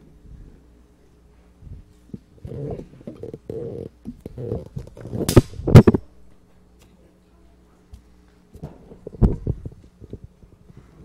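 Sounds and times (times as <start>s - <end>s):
microphone handling rumbling: 1.6s - 6.1s, 8.6s - 11.0s.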